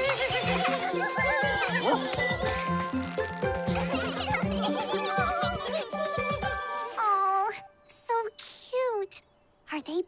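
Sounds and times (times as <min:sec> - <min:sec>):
bouncy cartoon music: 0:00.0 - 0:07.0.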